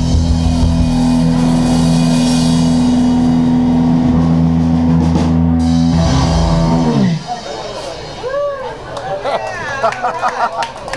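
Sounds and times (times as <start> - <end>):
rock band playing loud: 0.0 - 8.3.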